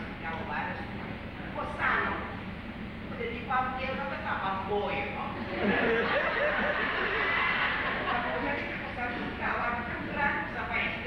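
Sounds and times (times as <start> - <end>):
audience laughing: 5.5 - 8.6.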